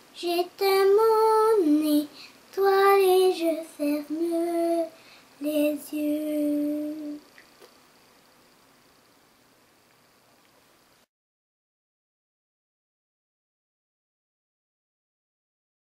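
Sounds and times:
girl singing unaccompanied: 0:00.0 - 0:07.4
faint room hiss: 0:00.0 - 0:11.1.

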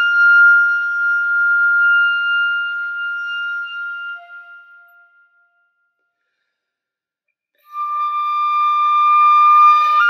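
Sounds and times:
wind instrument holding long note: 0:07.6 - 0:10.0.

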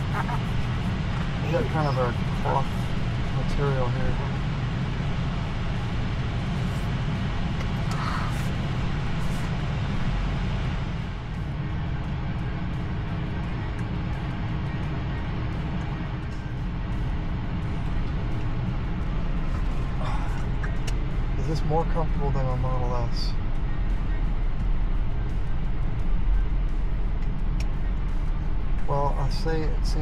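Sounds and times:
road and tyre rumble: 0:00.0 - 0:30.0.

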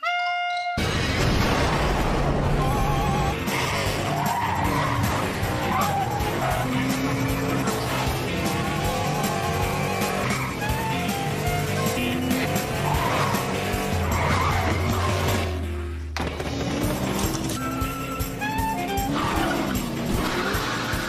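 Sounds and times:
cartoon background music: 0:02.0 - 0:21.0.

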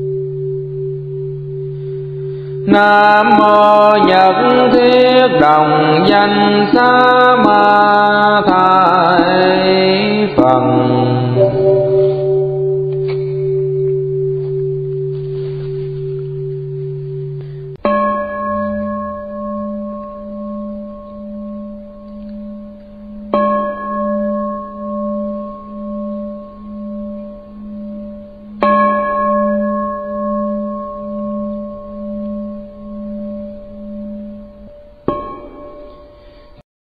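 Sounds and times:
bowl bell ringing: 0:00.0 - 0:05.5, 0:10.4 - 0:36.6
low ringing tone: 0:00.0 - 0:36.6.

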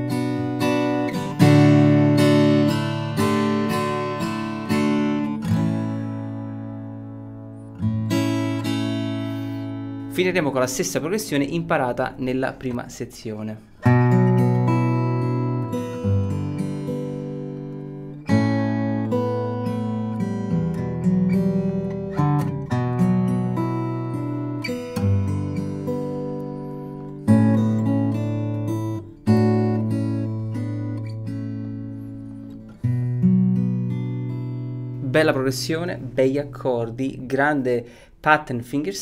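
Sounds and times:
acoustic guitar fingerstyle strumming: 0:00.0 - 0:38.1.

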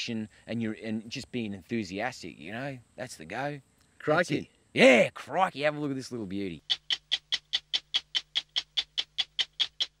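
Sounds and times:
stopwatch ticking: 0:06.6 - 0:10.0.

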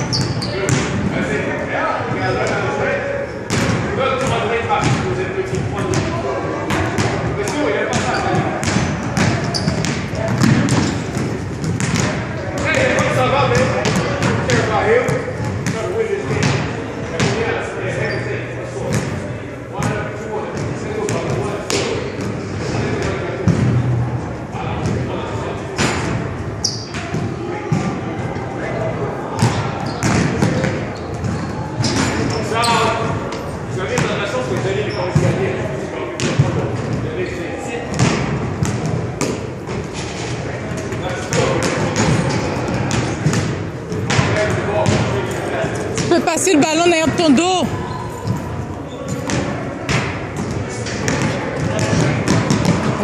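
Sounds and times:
basketballs bouncing on hardwood floor: 0:03.5 - 0:06.1, 0:07.9 - 0:13.0, 0:13.6 - 0:16.6, 0:29.4 - 0:32.1, 0:41.3 - 0:45.1, 0:49.2 - 0:53.0.

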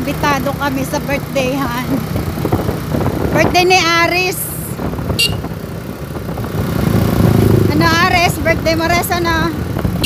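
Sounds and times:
vehicle engine and road rumble: 0:00.0 - 0:10.0.

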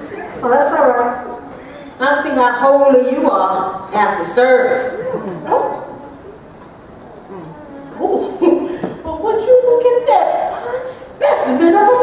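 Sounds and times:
hall ambience: 0:03.7 - 0:09.3
person's wavering wordless vocal: 0:04.9 - 0:08.8.

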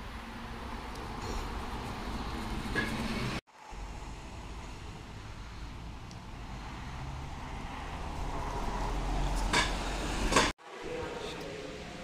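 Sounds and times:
articulated bus engine hum: 0:00.0 - 0:10.5
bus engine hum and road noise: 0:00.0 - 0:10.5.

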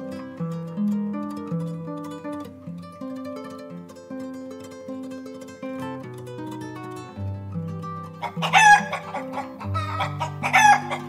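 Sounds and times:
background music with held notes: 0:03.6 - 0:11.0.

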